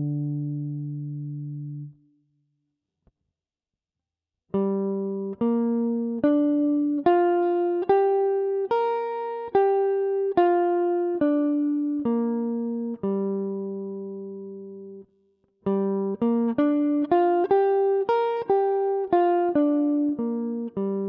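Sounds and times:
clean electric guitar arpeggio: 0:00.0 - 0:02.0, 0:04.6 - 0:15.0, 0:15.7 - 0:21.0.

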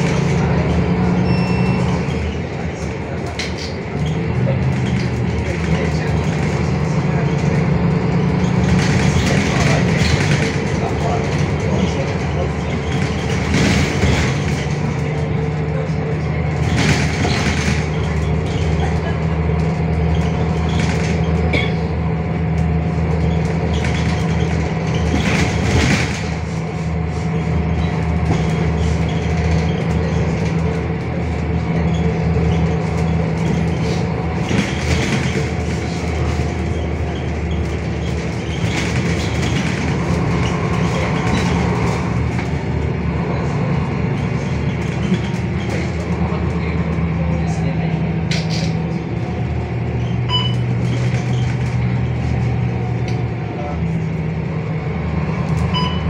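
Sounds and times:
bus diesel engine droning: 0:00.0 - 0:56.0.

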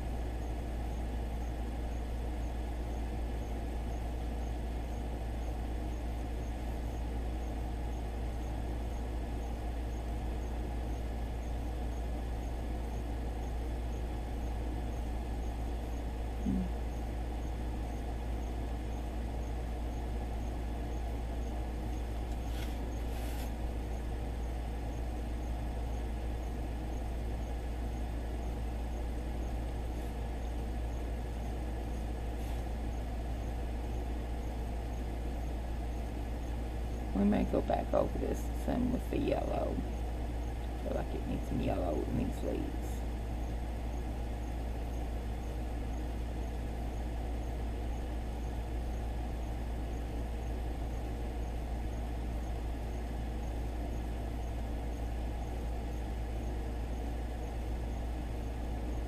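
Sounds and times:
low hum and hiss: 0:00.0 - 0:59.0.

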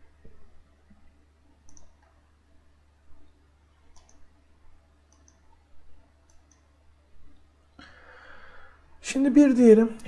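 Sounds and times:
steady low hum: 0:00.0 - 0:10.0
computer mouse clicks: 0:01.6 - 0:02.2, 0:03.2 - 0:04.3, 0:05.1 - 0:05.6, 0:06.2 - 0:06.7.

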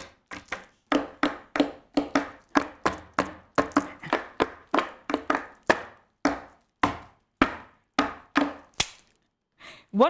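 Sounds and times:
sharp percussive knocks: 0:00.4 - 0:09.0.

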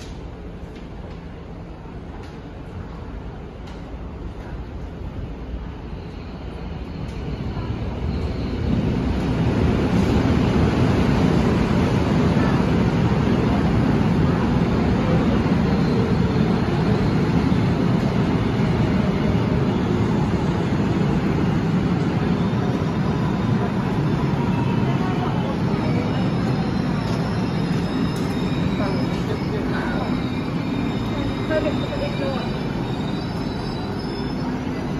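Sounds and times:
train wheels rumbling: 0:00.0 - 0:34.9
wheel and brake squeals: 0:25.7 - 0:34.9.

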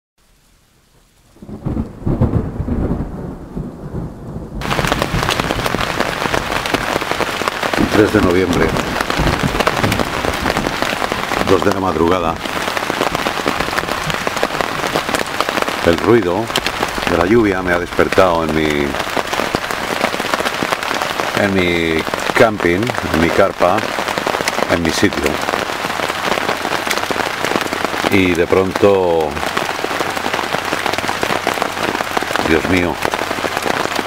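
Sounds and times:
rain pattering on a tent: 0:00.2 - 0:34.0.

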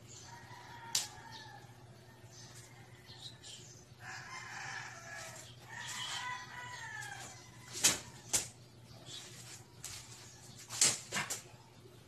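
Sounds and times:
steady low hum: 0:00.0 - 0:12.0
rooster crowing: 0:00.2 - 0:08.3.

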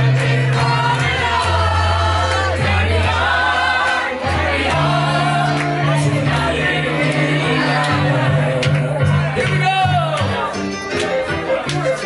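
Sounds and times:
voices singing along: 0:00.0 - 0:09.4
keyboard accompaniment: 0:00.0 - 0:12.0.

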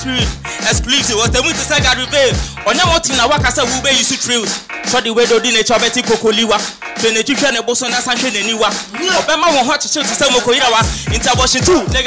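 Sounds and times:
hip hop beat: 0:00.0 - 0:12.0
man rapping: 0:00.0 - 0:12.0.

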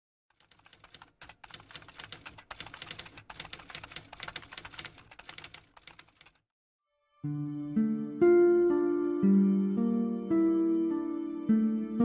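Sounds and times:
typewriter key clacks: 0:00.4 - 0:06.4.

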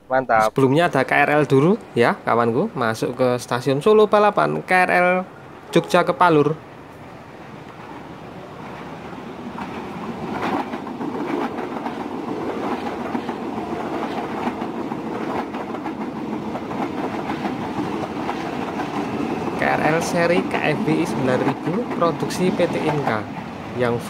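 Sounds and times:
electric train passing: 0:00.6 - 0:24.0
steel wheels rumbling on rails: 0:06.7 - 0:24.0.

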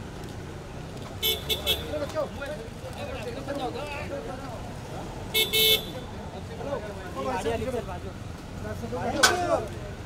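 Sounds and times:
traffic rumble: 0:00.0 - 0:10.0
vehicle horn toots: 0:01.2 - 0:01.9, 0:05.4 - 0:06.0.

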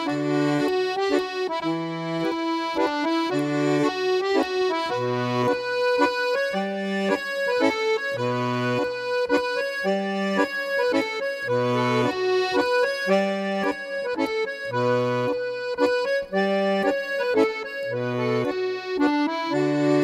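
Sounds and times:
accordion playing: 0:00.0 - 0:20.0.

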